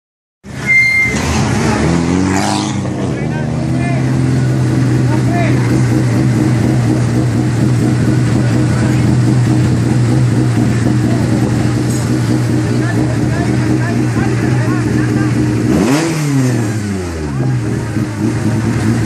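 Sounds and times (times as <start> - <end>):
people's voices: 1.0 - 19.0
car engine idling: 2.7 - 19.0.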